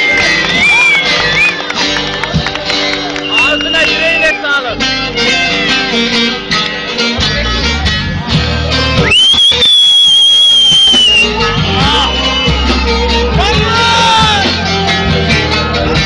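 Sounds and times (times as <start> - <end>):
plucked saz folk music: 0.0 - 9.1, 11.2 - 16.0
electric bass: 0.0 - 16.0.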